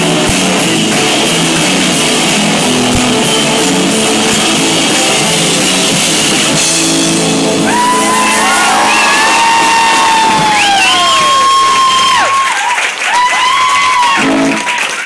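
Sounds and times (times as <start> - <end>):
live rock band: 0.0 - 15.0
audience cheering and whooping: 7.6 - 15.0.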